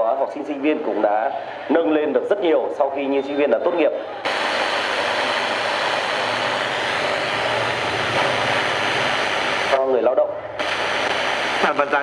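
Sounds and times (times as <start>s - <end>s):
radio static hissing: 3.8s - 12.0s
broadcast voice on radio: 11.2s - 12.0s.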